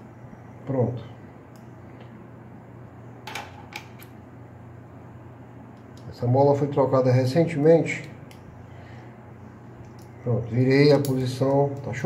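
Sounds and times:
metallic clicks of small parts: 0:10.9 - 0:12.0.

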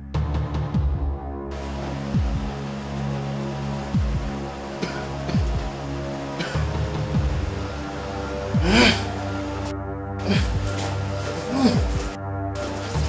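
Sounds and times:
low droning held tones: 0:01.5 - 0:13.0.

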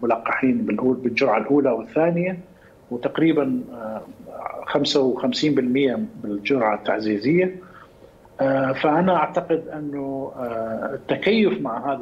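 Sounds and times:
man speaking: 0:00.0 - 0:07.8, 0:08.4 - 0:12.0.

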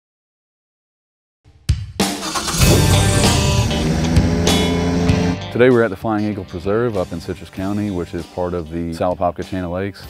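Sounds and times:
background music: 0:01.7 - 0:10.0
airboat engine revving: 0:02.2 - 0:05.4.

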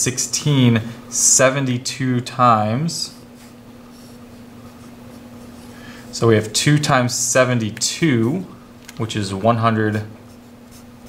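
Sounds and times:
steady low hum: 0:00.0 - 0:11.0
marker scratching on paper: 0:03.1 - 0:08.5, 0:09.2 - 0:11.0.

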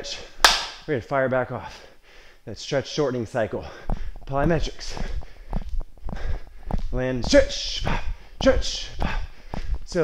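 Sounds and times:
sneakers thudding on turf floor: 0:03.8 - 0:10.0.

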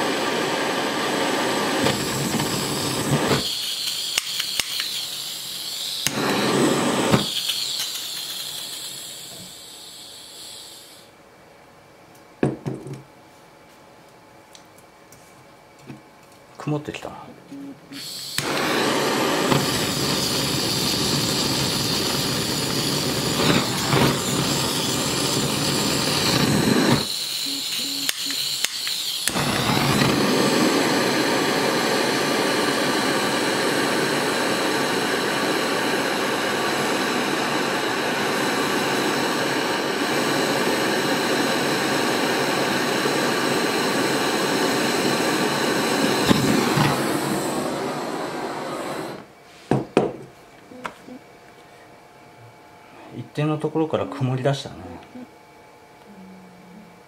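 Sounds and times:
gas burner flame hissing: 0:00.0 - 0:11.2, 0:17.9 - 0:49.8, 0:52.9 - 0:55.2.

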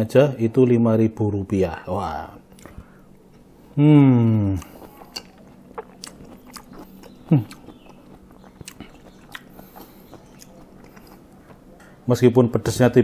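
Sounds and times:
person chewing fruit: 0:02.5 - 0:11.8
person humming hmm: 0:03.8 - 0:05.1, 0:07.2 - 0:07.7.

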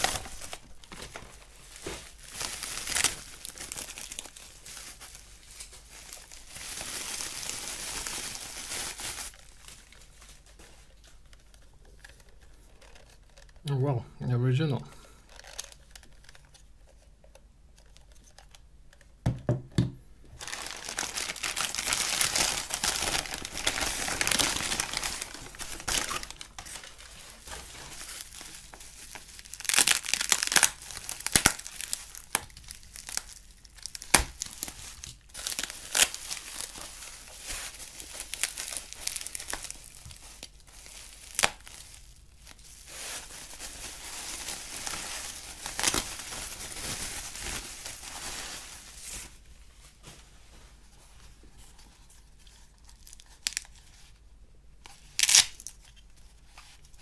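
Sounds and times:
paper and bubble wrap crinkling: 0:00.0 - 0:13.9, 0:15.1 - 0:19.1, 0:20.3 - 0:54.2, 0:54.8 - 0:57.0.

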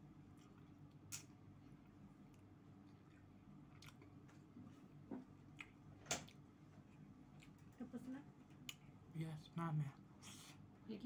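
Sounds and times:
low steady hum: 0:00.0 - 0:11.0
faint chewing: 0:00.2 - 0:09.0.

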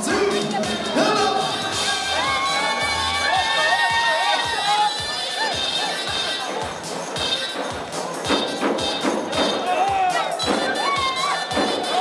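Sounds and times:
band music with drum beat: 0:00.0 - 0:12.0
crowd cheering: 0:00.5 - 0:12.0
high wavering cries: 0:01.4 - 0:06.5, 0:10.1 - 0:12.0.

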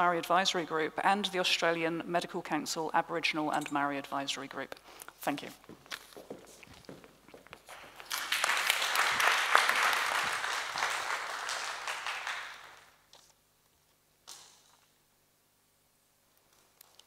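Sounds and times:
audience applauding: 0:07.7 - 0:13.0.

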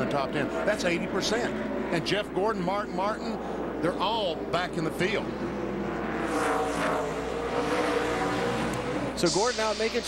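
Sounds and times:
race car engines running: 0:00.0 - 0:10.0.

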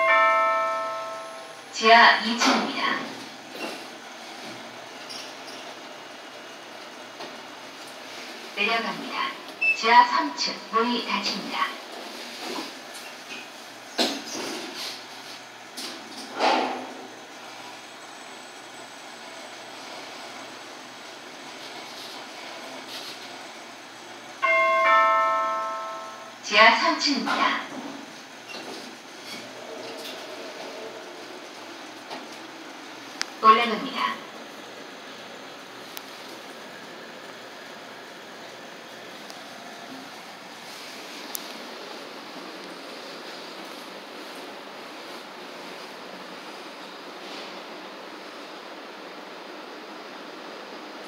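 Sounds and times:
two-tone electronic chime: 0:00.0 - 0:01.6, 0:24.4 - 0:26.4
elevator running with low hum: 0:00.0 - 0:51.0
subway station background noise: 0:00.0 - 0:51.0.

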